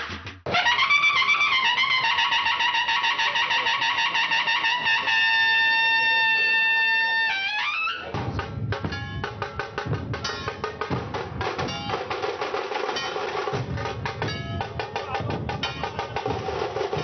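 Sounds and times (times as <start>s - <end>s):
brass horn fanfare: 0.5s - 7.9s.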